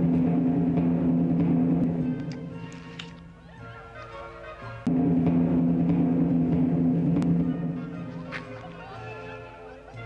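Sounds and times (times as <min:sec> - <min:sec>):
timpani drum roll: 0:00.0 - 0:03.5, 0:04.9 - 0:09.2.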